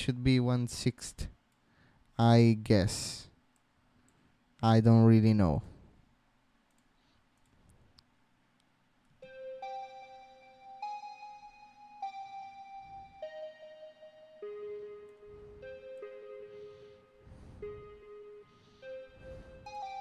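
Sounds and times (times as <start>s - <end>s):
faint clicks: 6.6s - 9.2s
held synthesizer notes: 9.2s - 20.0s.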